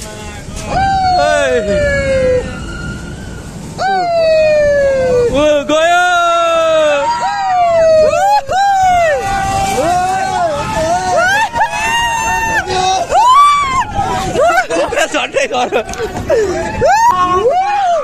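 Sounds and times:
riders shouting and whooping: 0.2 - 18.0.

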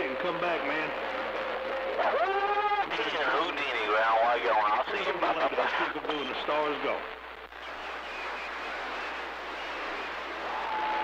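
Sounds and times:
pitched radio call: 0.0 - 11.0
radio static hiss: 0.0 - 11.0.

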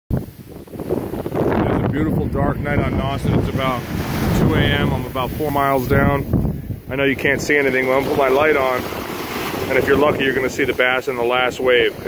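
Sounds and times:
surf rushing: 0.1 - 12.0
wind buffeting microphone: 0.1 - 12.0.

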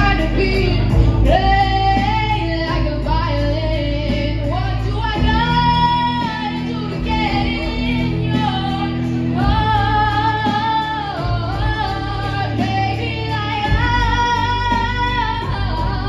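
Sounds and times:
girl singing a slow ballad: 0.0 - 16.0
instrumental accompaniment: 0.0 - 16.0.

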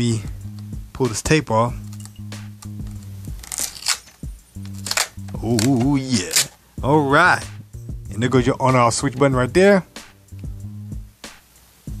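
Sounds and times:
background music: 0.0 - 12.0
adhesive tape peeling off plastic: 1.9 - 6.6.

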